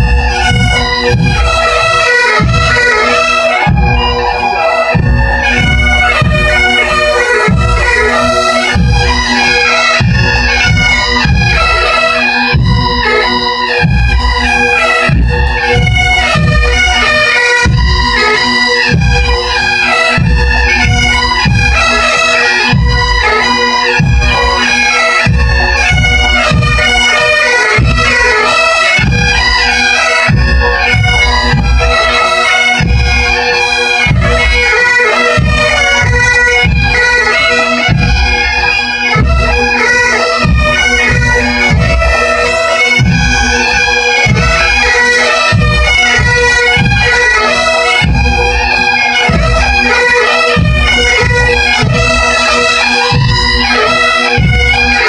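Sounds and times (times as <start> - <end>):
bass drum beating: 0.0 - 11.9, 12.5 - 18.2, 22.7 - 28.3, 30.3 - 53.7
bagpipes playing in unison: 0.0 - 55.0.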